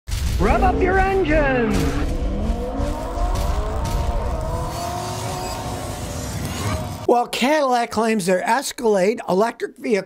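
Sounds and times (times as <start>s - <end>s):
car engine revving: 0.4s - 7.1s.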